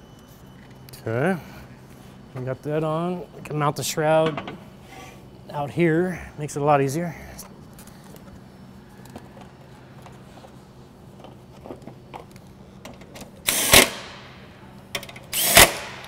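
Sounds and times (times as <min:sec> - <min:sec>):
cordless drill driving screws: 0:13.5 - 0:13.9, 0:15.3 - 0:16.0.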